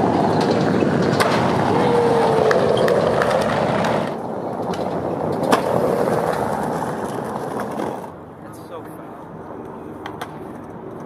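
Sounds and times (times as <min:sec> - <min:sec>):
skateboard click: 0:00.0 - 0:08.2, 0:09.6 - 0:10.8
skateboard wheels rolling on pavement: 0:00.0 - 0:11.0.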